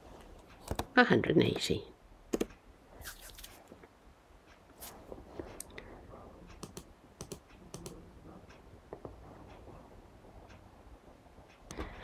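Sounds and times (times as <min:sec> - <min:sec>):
computer mouse and keys clicking: 0:00.2 - 0:01.0, 0:02.3 - 0:02.6, 0:06.5 - 0:08.1.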